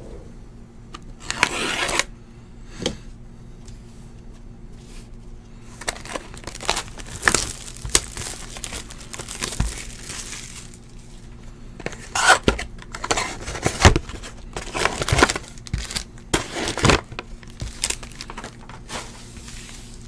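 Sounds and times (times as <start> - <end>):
wrapping crackling and crinkling: 5.6 - 20.0
foil packs rustling: 5.7 - 20.0.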